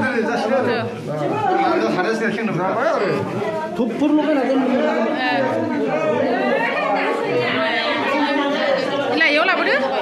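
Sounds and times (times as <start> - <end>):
group chatter of voices: 0.0 - 10.0.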